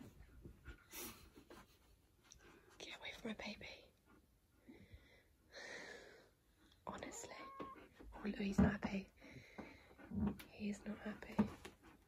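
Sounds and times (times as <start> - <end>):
soft whispering: 2.6 - 4.2, 6.8 - 9.2, 10.5 - 11.6.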